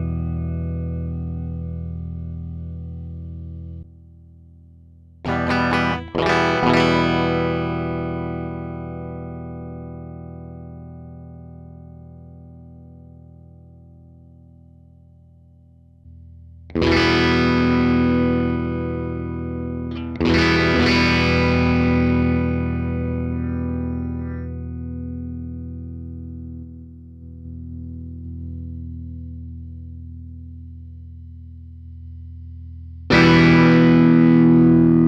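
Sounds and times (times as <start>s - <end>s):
electric guitar chord ringing: 0.0s - 3.7s, 5.3s - 14.7s, 16.7s - 29.2s, 33.1s - 35.0s.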